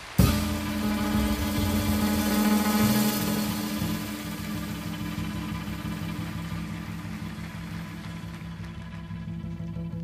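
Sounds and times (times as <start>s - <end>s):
long held mid-range note: 0.0s - 10.0s
jazz quintet playing: 0.2s - 5.2s
moving low bass notes: 0.2s - 10.0s.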